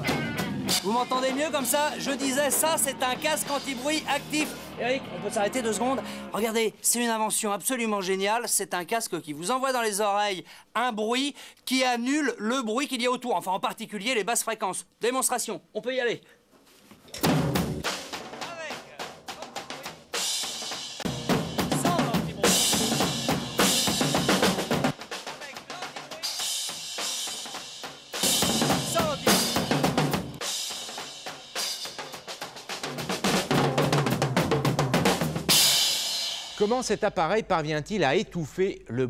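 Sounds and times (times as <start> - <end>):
drum kit played hard: 0.0 - 6.4, 17.2 - 37.1.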